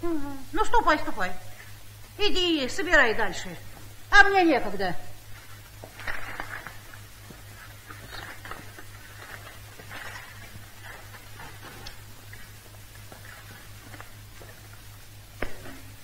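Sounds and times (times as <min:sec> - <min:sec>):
low mains hum: 0:00.0 - 0:16.0.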